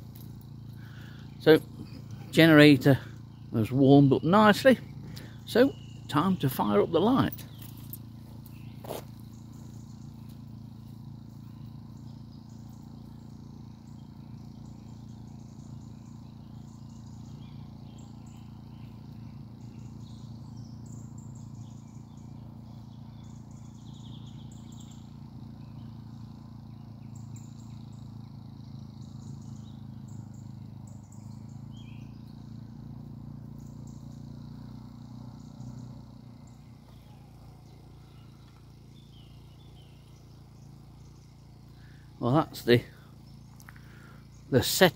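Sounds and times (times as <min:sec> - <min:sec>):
generator humming: 0:00.0 - 0:44.9
small birds chirping: 0:00.0 - 0:44.9.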